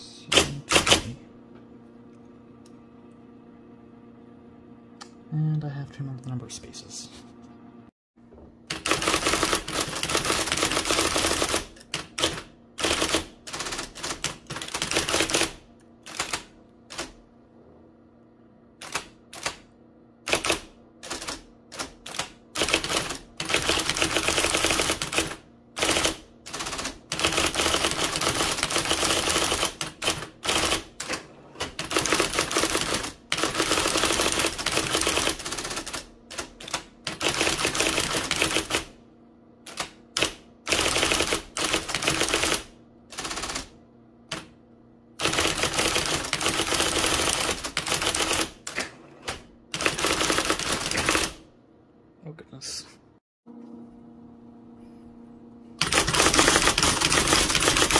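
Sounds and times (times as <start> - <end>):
electric typewriter typing: 0.3 - 1.2, 8.6 - 17.2, 18.8 - 39.0, 39.6 - 44.6, 45.2 - 51.5, 55.8 - 57.9.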